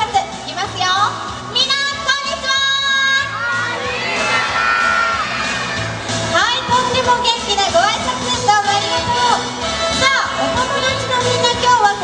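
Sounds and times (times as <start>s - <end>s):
background music: 0.0s - 12.0s
children shouting a greeting: 3.2s - 6.0s.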